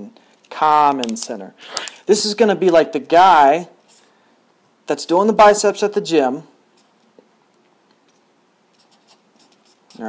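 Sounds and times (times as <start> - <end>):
marker drawing on paper: 8.1 - 10.0.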